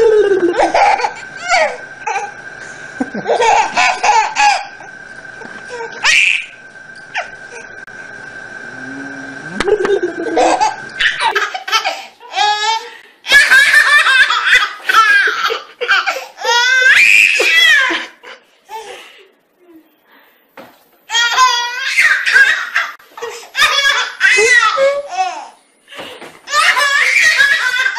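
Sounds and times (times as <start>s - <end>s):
woman laughing: 0.0s - 1.1s, 3.0s - 4.5s, 9.4s - 11.8s
baby laughing: 0.0s - 2.3s, 3.2s - 4.8s, 9.5s - 18.2s, 21.1s - 25.5s, 26.5s - 27.9s.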